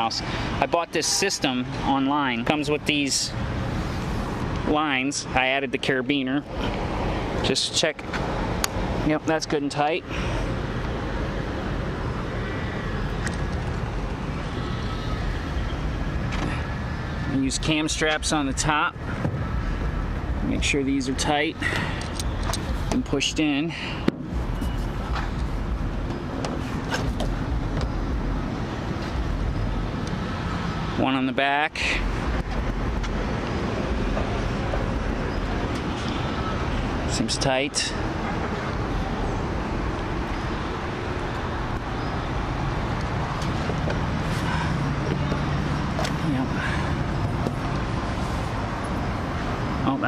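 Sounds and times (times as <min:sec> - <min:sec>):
outdoor rumble and hiss: 0:00.0 - 0:50.0.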